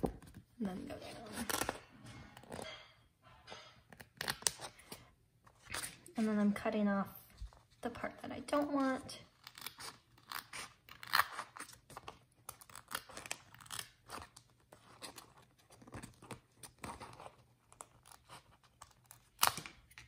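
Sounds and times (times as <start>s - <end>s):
scissors snipping paper: 3.9s - 5.0s, 8.8s - 20.0s.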